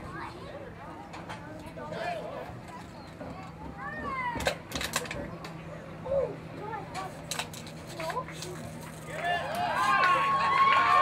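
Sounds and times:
distant voices calling out: 0.0s - 11.0s
steady low hum: 0.0s - 11.0s.

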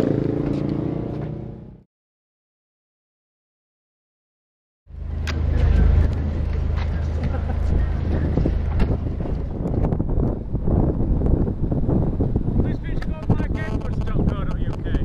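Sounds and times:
wind buffeting microphone: 5.0s - 15.0s.

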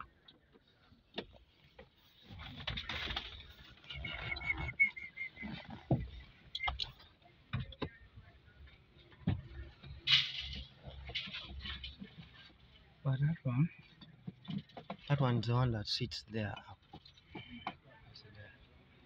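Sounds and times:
plastic rustling and scraping: 1.7s - 6.4s.

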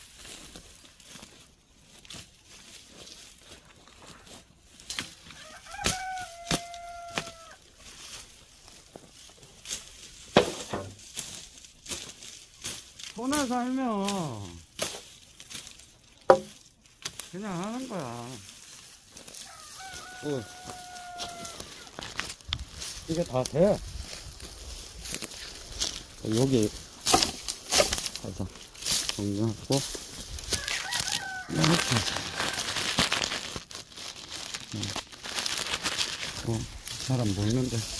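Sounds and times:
rooster crowing: 5.2s - 7.6s, 19.3s - 22.1s, 30.4s - 32.9s
sharp knocks: 16.3s - 16.5s.

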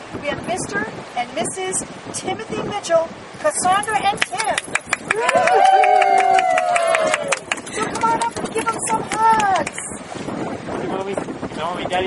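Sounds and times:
wind buffeting microphone: 0.0s - 12.0s
voices: 0.2s - 10.0s.

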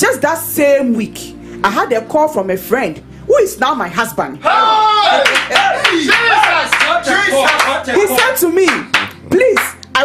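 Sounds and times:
voices exclaiming: 4.4s - 8.3s
hand clapping: 5.2s - 10.0s.

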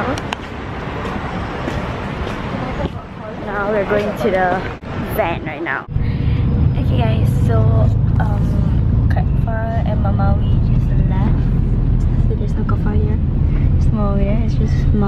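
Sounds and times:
voices: 1.0s - 15.0s.

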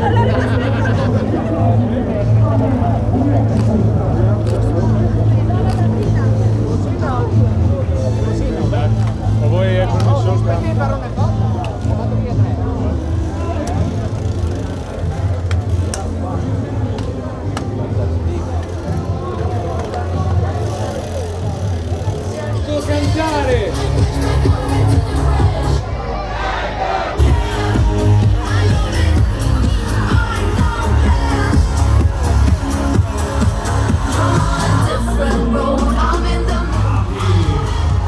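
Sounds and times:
crowd chatter: 0.0s - 38.0s
indistinct voices: 0.0s - 38.0s.

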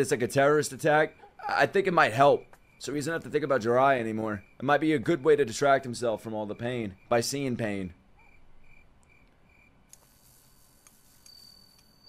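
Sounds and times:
faint high chirps: 8.2s - 12.0s
faint hiss: 9.9s - 12.0s.

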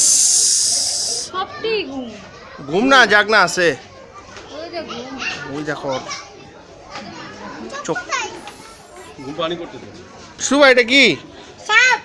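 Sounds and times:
child's high-pitched call: 0.0s - 2.0s
children chattering: 0.0s - 12.0s.

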